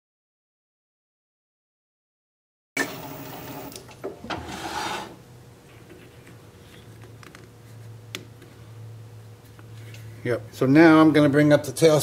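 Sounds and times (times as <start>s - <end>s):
faint steady hum: 2.8s - 12.0s
wood scraping and rubbing: 4.3s - 5.2s.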